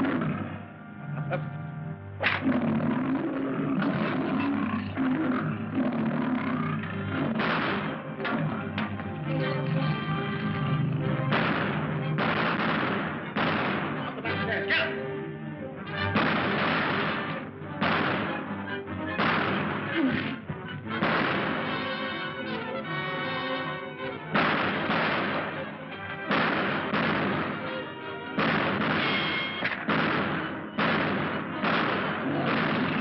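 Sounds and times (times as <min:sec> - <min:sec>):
dramatic film score music: 0:00.0 - 0:33.0
pistol shots echoing: 0:07.2 - 0:09.0, 0:11.0 - 0:14.6, 0:15.9 - 0:22.6, 0:24.3 - 0:33.0.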